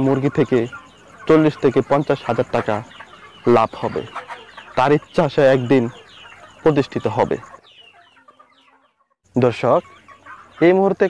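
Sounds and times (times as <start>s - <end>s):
man speaking: 0.0s - 4.2s, 4.8s - 6.0s, 6.6s - 7.5s, 9.4s - 10.0s, 10.6s - 11.0s
chickens clucking and peeping: 0.0s - 11.0s.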